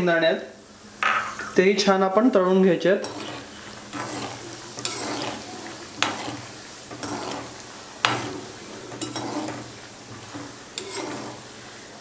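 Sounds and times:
peanuts sizzling in hot oil: 2.8 - 12.0
metal ladle scraping pan: 3.0 - 11.7.

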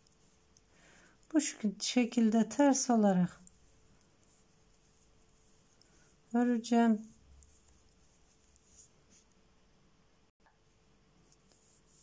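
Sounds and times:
knitting needles clicking: 3.3 - 6.0.

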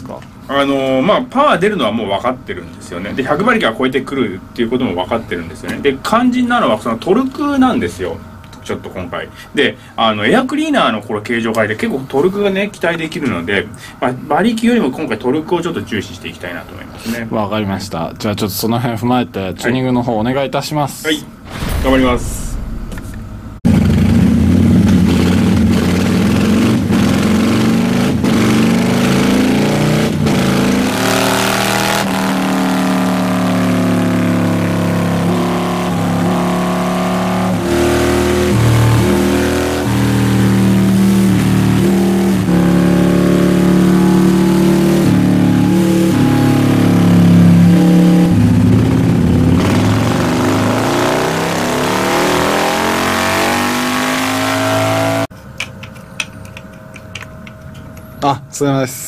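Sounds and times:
motorcycle engine revving: 22.4 - 55.3.

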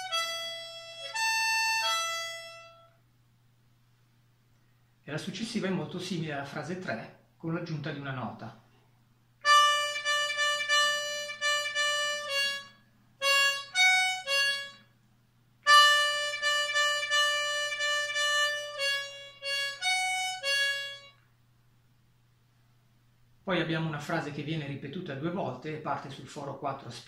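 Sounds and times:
harmonica repeated notes: 0.0 - 3.1, 9.4 - 15.0, 15.6 - 21.3.

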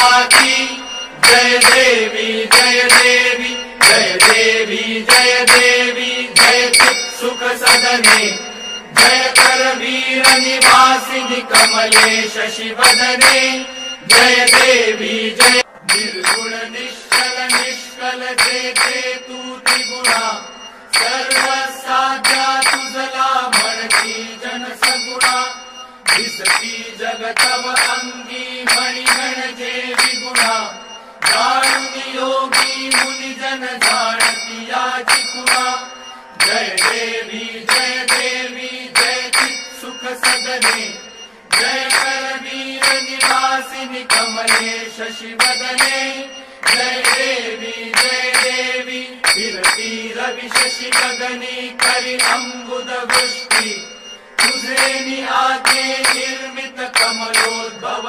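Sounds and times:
bell ringing: 0.0 - 58.0
devotional hymn singing: 0.0 - 58.0
sharp percussion strikes: 0.0 - 58.0.

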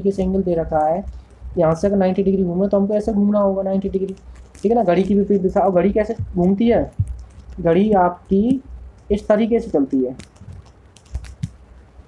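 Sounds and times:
low background hum: 0.0 - 12.0
stylus tapping on touchscreen: 4.0 - 11.6.

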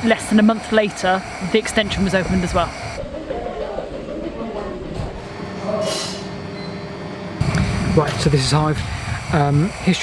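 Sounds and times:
miniature train rumbling on track: 0.0 - 4.5.

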